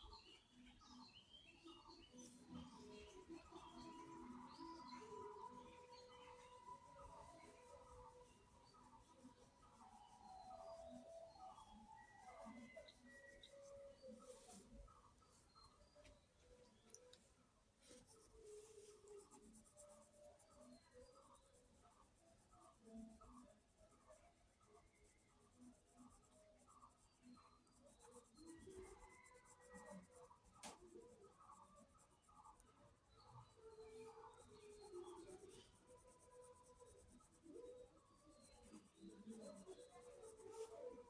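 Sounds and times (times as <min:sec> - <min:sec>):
pencil scratching on paper: 0:16.8 - 0:24.0, 0:25.0 - 0:41.0.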